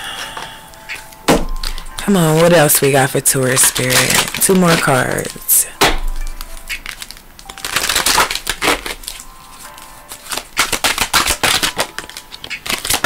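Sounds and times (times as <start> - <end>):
faint background music: 0.0 - 13.0
cards shuffling: 0.2 - 13.0.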